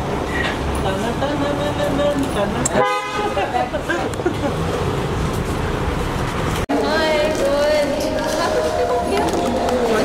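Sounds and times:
car horn toot: 2.8s - 3.4s.

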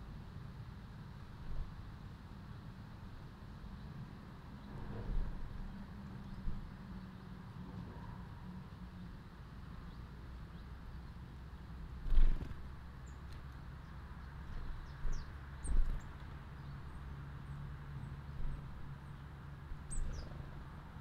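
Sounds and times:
songbirds chirping: 3.6s - 7.4s, 8.7s - 21.0s.

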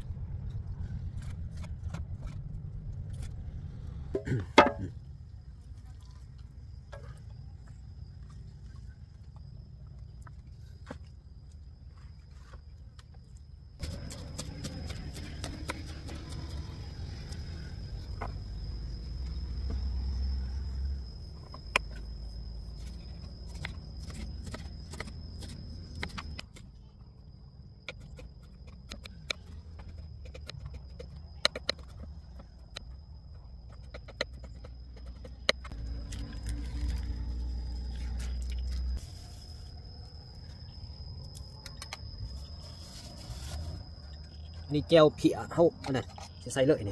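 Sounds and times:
low rumble: 0.0s - 5.8s
faint high whine: 0.0s - 46.9s.

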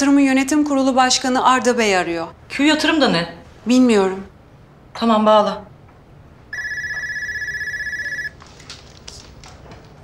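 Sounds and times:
telephone ringing with warble: 6.5s - 8.4s.

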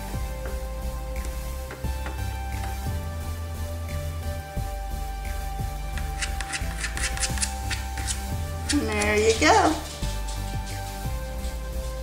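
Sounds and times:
background music: 0.0s - 12.0s
razor blade scraping plastic: 6.0s - 9.1s.

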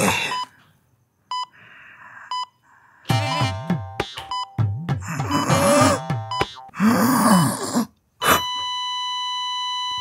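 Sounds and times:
monitor flatline beep: 1.3s - 1.5s, 8.4s - 10.0s
electronic game tones: 6.2s - 6.7s.

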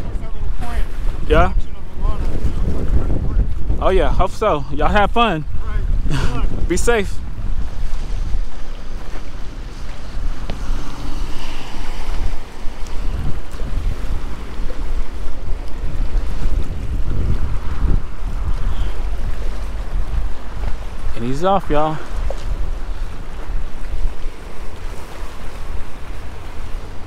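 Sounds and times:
small waves washing: 0.0s - 27.0s
wind buffeting microphone: 0.0s - 27.0s.

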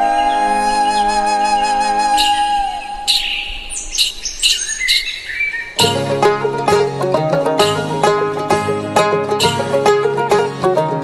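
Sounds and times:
birds chirping: 0.0s - 8.4s.

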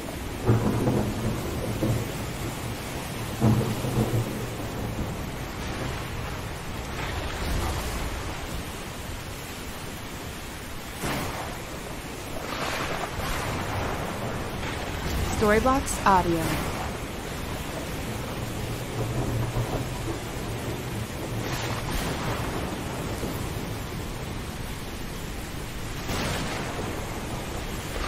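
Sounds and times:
steady rain: 0.0s - 28.0s
thunder rumbling: 0.0s - 28.0s.

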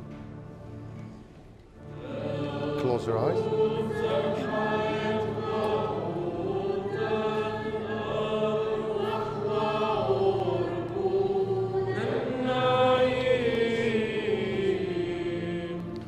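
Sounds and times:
choir singing a slow hymn: 0.0s - 16.0s
low steady accompaniment: 0.0s - 16.0s.

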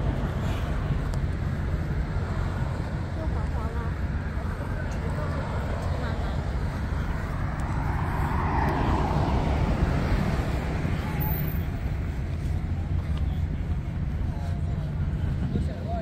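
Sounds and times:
low rumble of city traffic: 0.0s - 16.0s
minibus passing: 0.0s - 16.0s.

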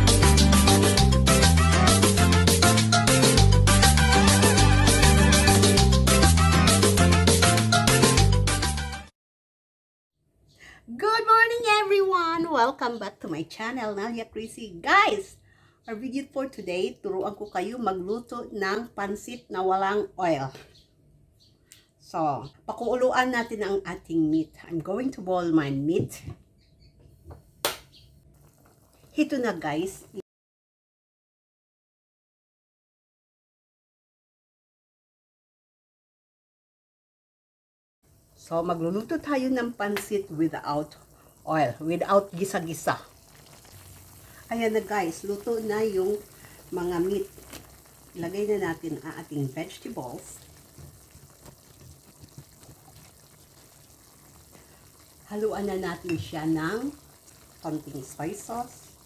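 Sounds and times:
broth simmering in a wok: 38.1s - 59.0s.

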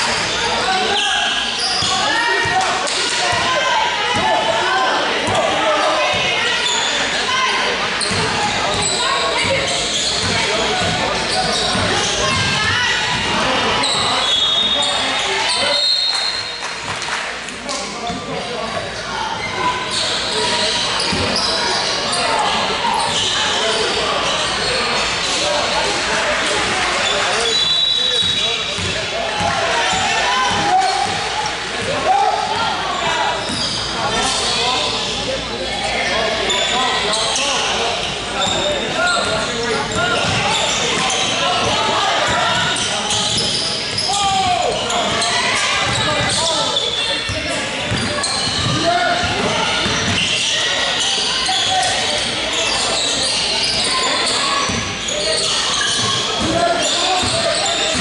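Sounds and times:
voices echoing in hall: 0.0s - 58.0s
sneakers squeaking on court: 0.1s - 2.6s, 8.0s - 16.6s, 18.1s - 25.9s, 26.5s - 32.0s, 32.6s - 58.0s
people calling out: 35.9s - 58.0s.

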